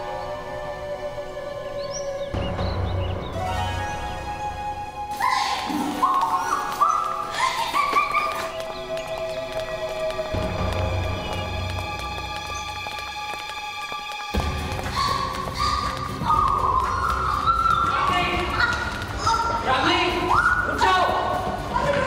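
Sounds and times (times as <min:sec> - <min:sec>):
climbing run of notes: 0:01.8 - 0:22.0.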